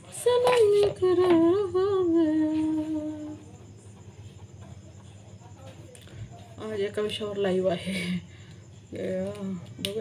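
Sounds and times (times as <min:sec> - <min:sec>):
woman humming a slow tune: 0:00.2 - 0:03.7.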